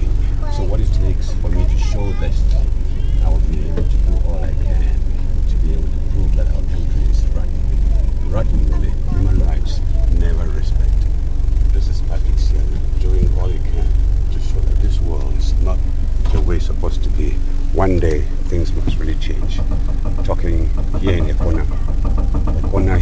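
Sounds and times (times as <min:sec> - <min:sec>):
murmur of voices: 0:00.0 - 0:16.8
bus engine idling: 0:00.0 - 0:23.0.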